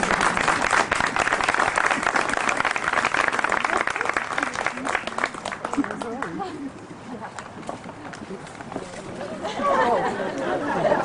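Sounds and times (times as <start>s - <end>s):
scattered claps: 0.0s - 6.4s
crowd chatting: 3.7s - 11.0s.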